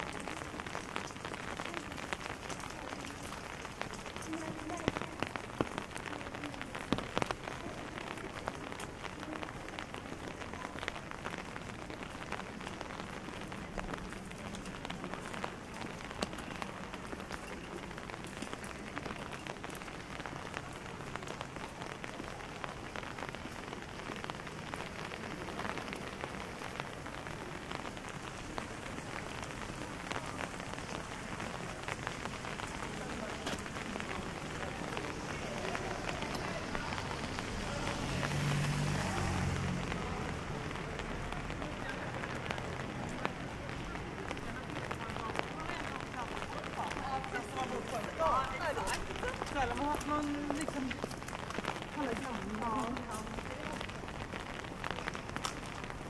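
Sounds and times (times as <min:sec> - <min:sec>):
rain falling: 0:00.0 - 0:56.0.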